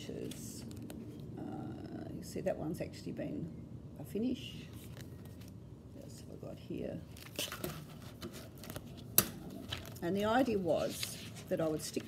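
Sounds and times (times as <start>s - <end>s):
paper pages rustling: 7.1s - 12.0s.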